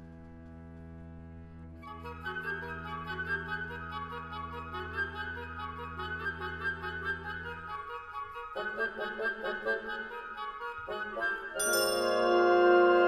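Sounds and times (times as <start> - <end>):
flute pulsing notes: 1.8 - 13.0.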